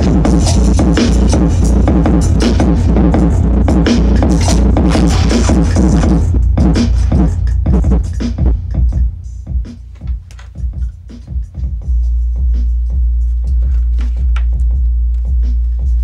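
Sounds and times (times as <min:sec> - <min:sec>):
drum hits: 0:00.0 - 0:12.0
loud electronic music: 0:00.0 - 0:16.0
deep sustained bass note: 0:00.7 - 0:08.0.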